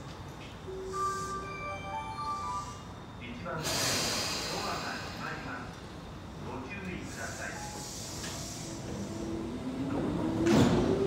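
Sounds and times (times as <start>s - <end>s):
train air brakes hissing: 0.8s - 5.6s, 7.0s - 9.4s.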